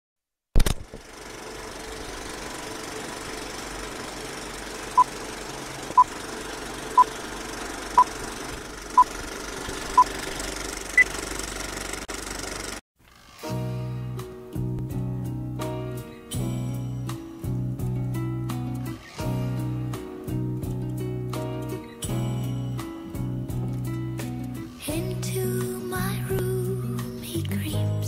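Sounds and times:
sharp click: 0.6 - 1.0
film projector crackling: 0.6 - 12.8
guitar song: 13.5 - 28.0.

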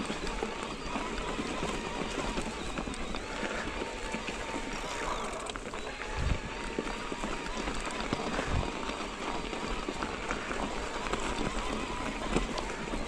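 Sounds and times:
faint wavering whine: 0.0 - 8.7
bike frame and chain rattle: 0.0 - 13.0
bike tyre crunch on trail: 0.0 - 13.0.

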